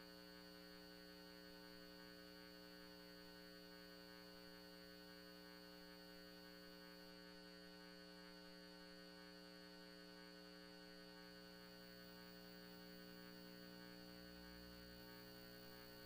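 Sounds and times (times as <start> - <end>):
faint electrical hum: 0.1 - 16.0.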